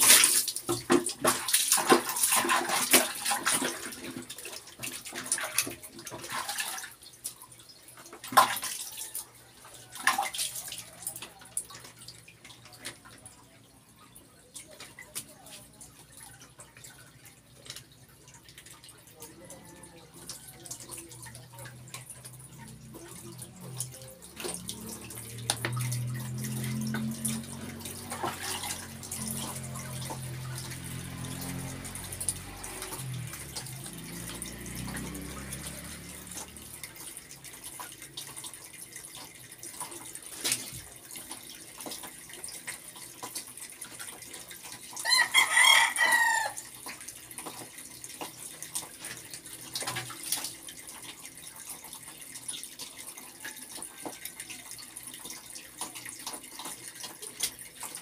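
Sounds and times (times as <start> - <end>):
water splashing and pouring: 0.0 - 58.0
rooster crowing: 45.0 - 46.6.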